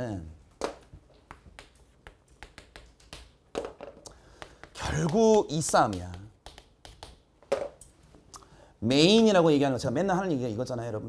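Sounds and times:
chalk tapping on chalkboard: 0.6 - 7.8.

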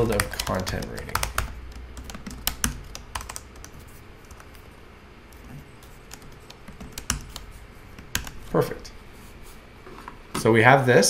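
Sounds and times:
typing on computer keyboard: 0.0 - 4.6, 5.4 - 8.4.

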